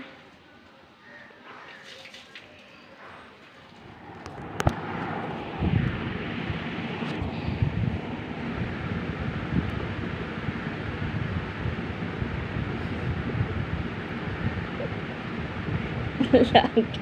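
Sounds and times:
wind buffeting microphone: 3.8s - 17.0s.

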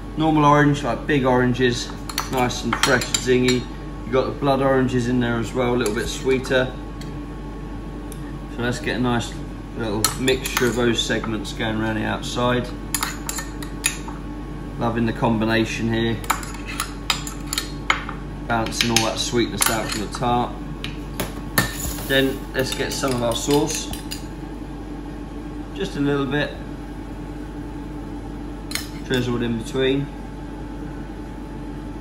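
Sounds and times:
low electrical hum: 0.0s - 32.0s
metal spoon clinking on pots: 2.1s - 3.6s, 10.0s - 10.8s, 12.9s - 14.0s, 21.6s - 24.2s.

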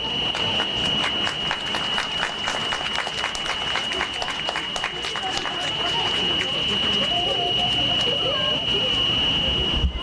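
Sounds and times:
crowd applauding: 0.0s - 8.5s
steady high-pitched tone: 0.0s - 10.0s.

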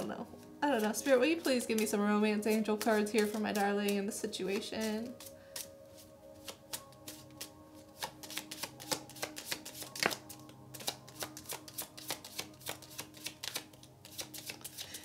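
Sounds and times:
faint background music: 0.0s - 15.0s
cards being shuffled by hand: 0.8s - 15.0s.

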